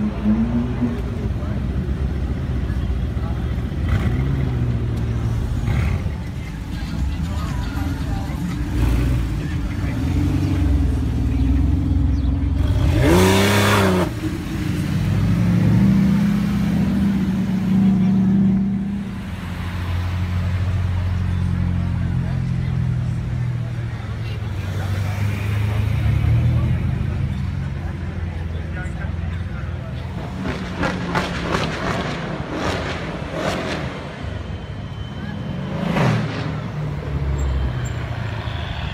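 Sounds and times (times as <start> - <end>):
car engines and exhausts: 0.0 - 38.9
loud engine rev: 3.7 - 4.8, 8.7 - 19.0.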